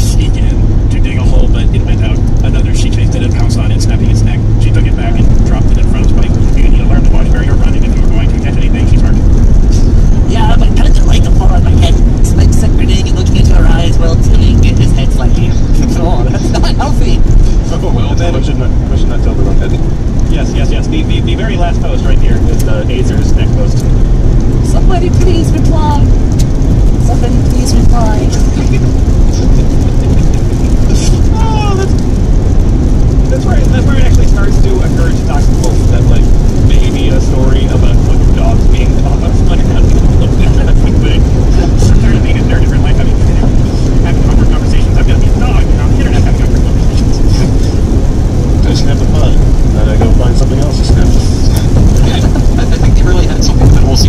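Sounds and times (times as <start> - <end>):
car road and engine noise: 0.0 - 54.0.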